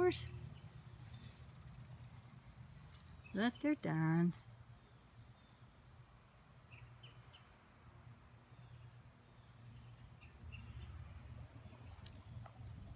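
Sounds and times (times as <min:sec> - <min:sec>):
faint outdoor ambience: 0:00.0 - 0:12.9.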